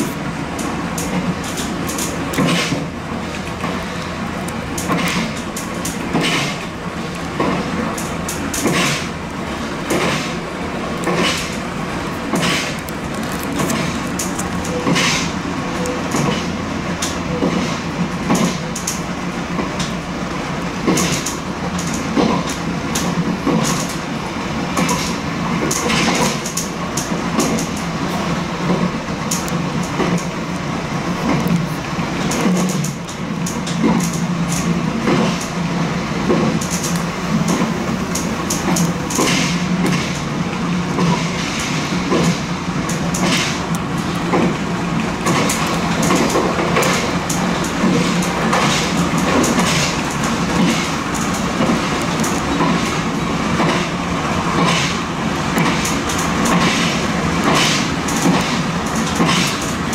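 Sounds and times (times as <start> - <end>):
wheels clicking over rail joints: 0.0 - 35.6, 36.2 - 59.9
electric train running drone: 0.0 - 59.9.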